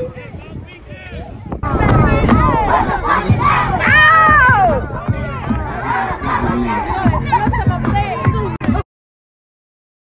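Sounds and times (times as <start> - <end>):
children shouting and chanting: 1.6 - 8.6.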